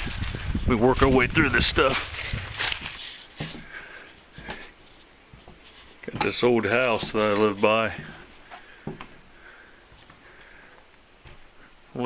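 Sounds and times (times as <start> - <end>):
soft breathing through nose: 2.0 - 6.1, 7.9 - 11.9.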